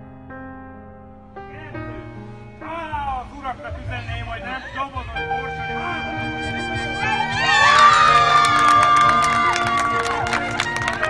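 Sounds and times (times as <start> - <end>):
music: 0.0 - 11.0
women shrieking and cheering: 4.5 - 11.0.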